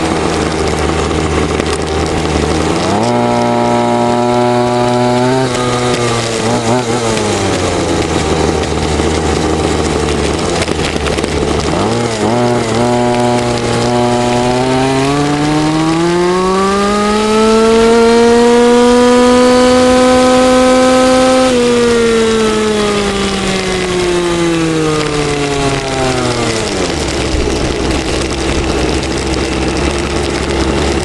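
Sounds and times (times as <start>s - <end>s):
small engine running: 0.0s - 31.0s.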